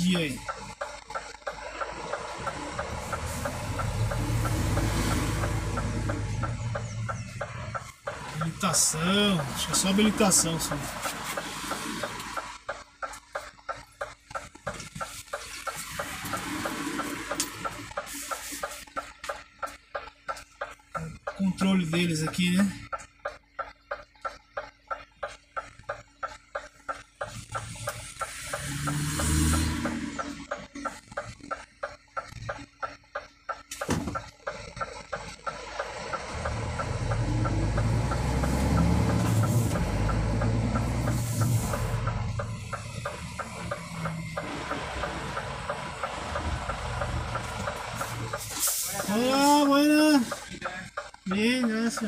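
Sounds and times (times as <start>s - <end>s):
steady quick ticking: 0.0s - 52.0s
truck diesel engine: 0.0s - 52.0s.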